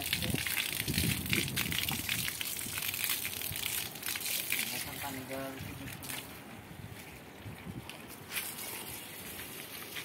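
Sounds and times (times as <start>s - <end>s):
hose water splashing on concrete: 0.0s - 10.0s.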